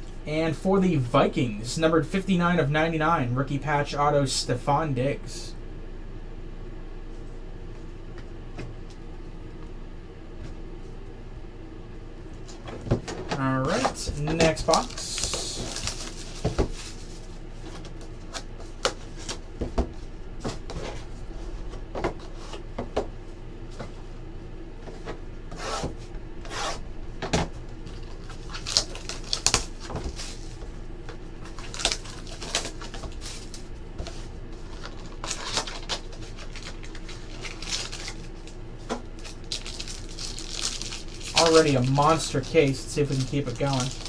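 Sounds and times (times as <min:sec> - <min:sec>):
low steady hum: 0:00.0 - 0:44.0
cardboard and shrink-wrap crinkling: 0:13.7 - 0:19.4, 0:27.8 - 0:30.7, 0:31.4 - 0:44.0.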